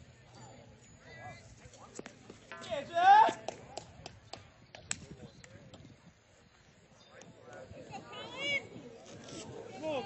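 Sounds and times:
scattered clapping: 3.4s - 5.8s.

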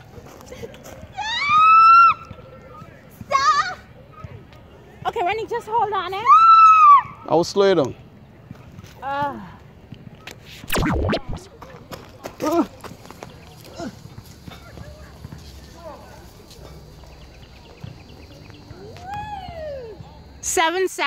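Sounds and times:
people calling and shouting: 8.0s - 21.0s.

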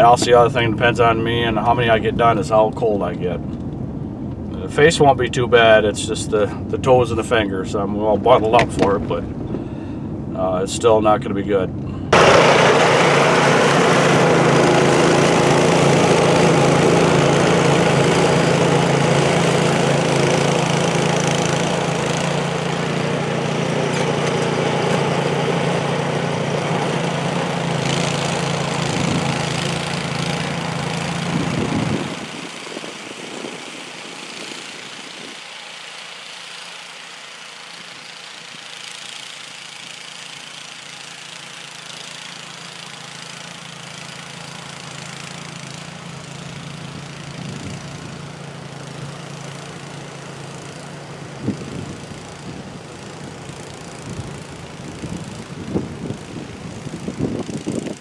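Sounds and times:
snowblower engine running: 0.0s - 5.1s, 7.8s - 10.3s, 11.7s - 58.0s.

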